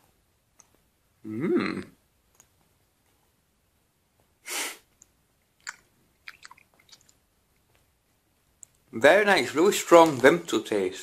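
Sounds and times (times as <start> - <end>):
wet mouth chewing clicks: 5.6 - 7.2.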